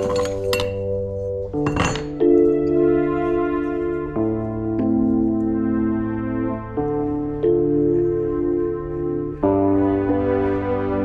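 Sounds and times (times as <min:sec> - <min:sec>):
metal pipe clinking on stone: 0:00.0 - 0:00.9, 0:01.5 - 0:02.3
pipe clattering: 0:00.0 - 0:02.3
piano background music: 0:00.0 - 0:11.0.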